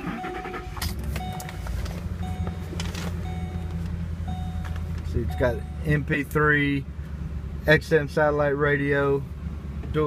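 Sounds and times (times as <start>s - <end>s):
dashboard warning chime: 0.0s - 6.3s
car engine starting and idling: 0.0s - 10.0s.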